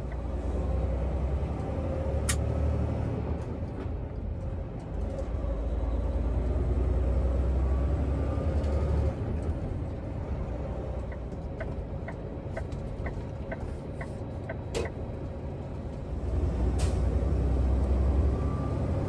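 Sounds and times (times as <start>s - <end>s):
truck diesel engine droning: 0.0s - 19.0s.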